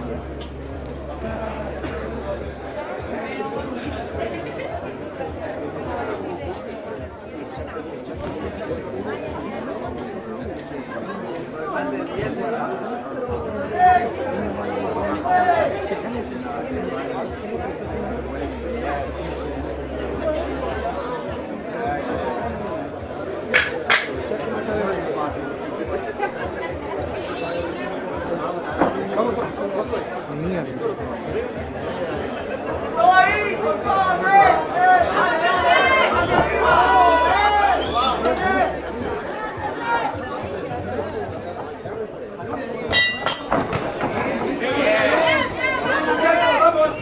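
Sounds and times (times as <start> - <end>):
crowd chattering: 0.0 - 47.0
men talking nearby: 0.0 - 47.0.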